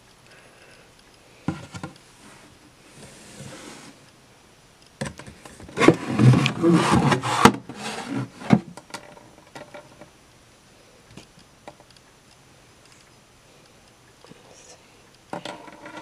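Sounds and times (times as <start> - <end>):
plastic divider scraping drawer: 5.7 - 8.7.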